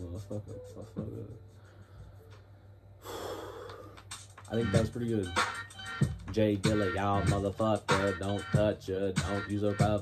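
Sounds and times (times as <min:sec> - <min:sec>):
man exhaling heavily: 0:03.0 - 0:04.0.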